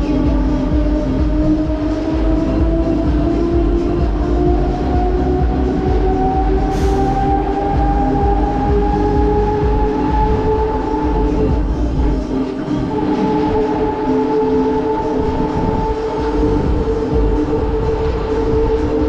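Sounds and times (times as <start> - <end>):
ride machinery whine and rumble: 0.0 - 19.0.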